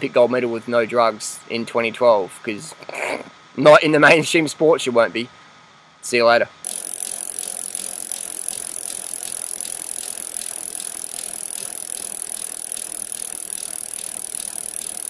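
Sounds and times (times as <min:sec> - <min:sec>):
bicycle freewheel hub clicking: 0:06.6 - 0:15.0.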